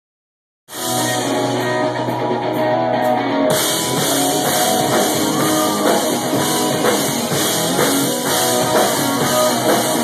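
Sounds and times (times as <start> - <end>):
drum kit: 0.7 - 10.0
electric guitar: 0.7 - 10.0.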